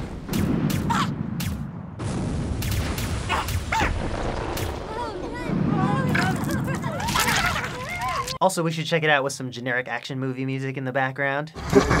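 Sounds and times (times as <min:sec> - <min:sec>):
booms and sharp hits: 0:00.0 - 0:07.1.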